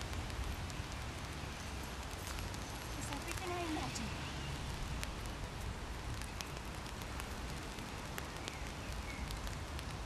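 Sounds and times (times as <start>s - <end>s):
faint ticks: 0.0s - 4.1s, 4.9s - 10.0s.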